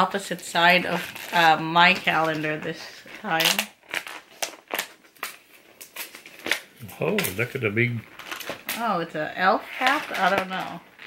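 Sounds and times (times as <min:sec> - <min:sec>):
cardboard crackling and clicking: 0:00.8 - 0:07.5.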